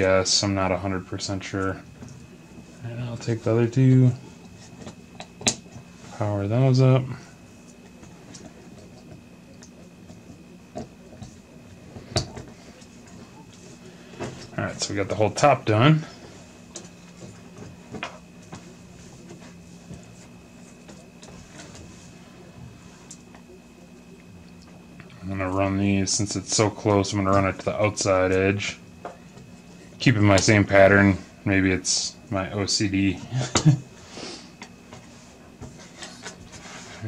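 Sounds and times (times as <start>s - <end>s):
steady low hum: 0.0s - 37.0s
cables rustling and clicking: 1.5s - 6.2s.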